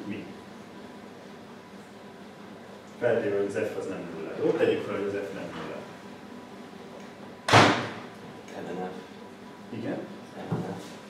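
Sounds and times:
sharp bang: 7.5 - 8.0.

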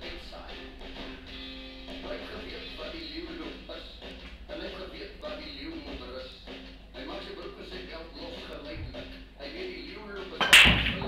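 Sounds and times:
pool balls clattering and rolling: 10.3 - 11.0
cue ball cracking into balls: 10.4 - 11.0.

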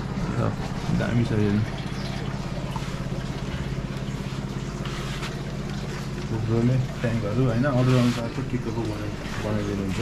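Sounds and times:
aquarium air pump humming: 0.0 - 10.0.

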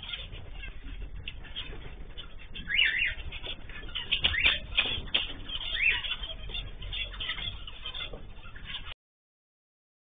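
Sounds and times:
birds chirping and chattering: 0.0 - 9.0.

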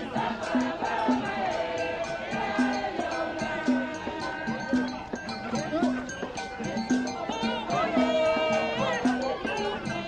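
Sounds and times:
bright percussion: 0.0 - 10.0
wavering singing voices: 0.0 - 10.0.

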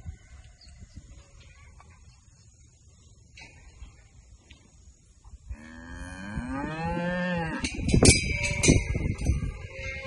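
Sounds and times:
cow mooing: 5.6 - 7.7.

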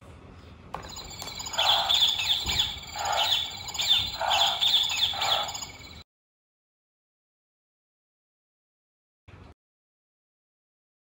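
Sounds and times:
electronic chirping calls: 0.8 - 6.0.

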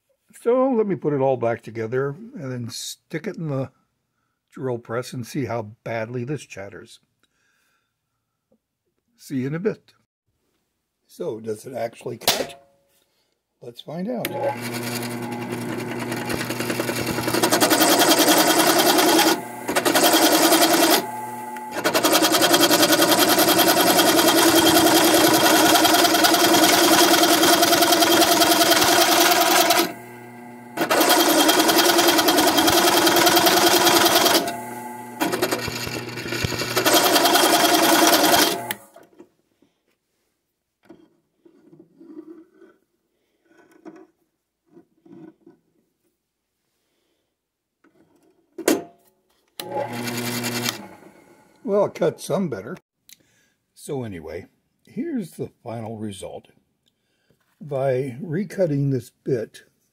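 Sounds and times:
drill press cutting metal: 14.3 - 38.9, 49.6 - 51.6.

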